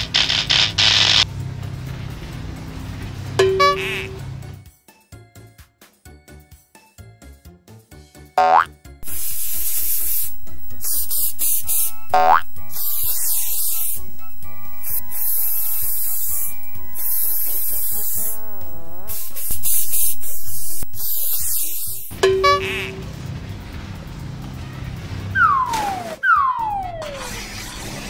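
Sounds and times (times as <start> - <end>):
spray-paint hiss: 0.0 - 1.2, 9.0 - 22.1
children's music tune: 3.4 - 4.2
cartoon boing glides: 8.4 - 8.7, 12.1 - 12.5.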